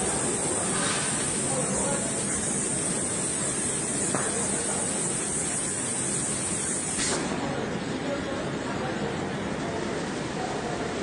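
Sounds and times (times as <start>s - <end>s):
continuous high hiss: 0.0s - 11.0s.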